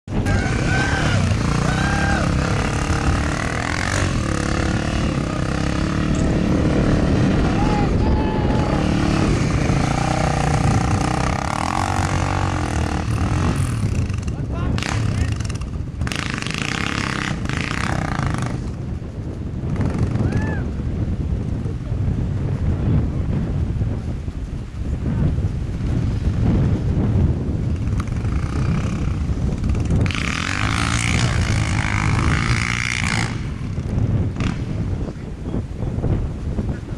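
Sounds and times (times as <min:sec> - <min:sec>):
dirt bike engine: 0:00.0 - 0:21.7, 0:25.8 - 0:35.2
people talking: 0:00.2 - 0:03.0, 0:07.4 - 0:09.0, 0:14.3 - 0:15.4.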